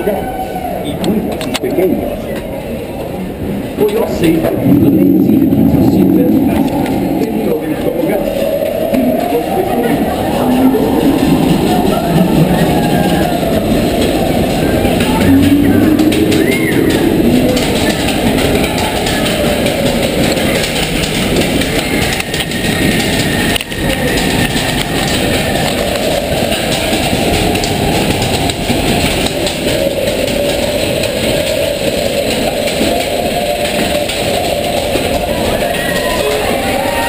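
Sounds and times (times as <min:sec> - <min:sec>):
roller coaster rumbling on track: 0:00.0 - 0:37.0.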